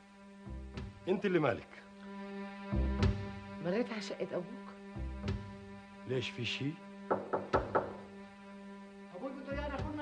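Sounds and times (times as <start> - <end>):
knocks on a wooden door: 7.1 - 8.1.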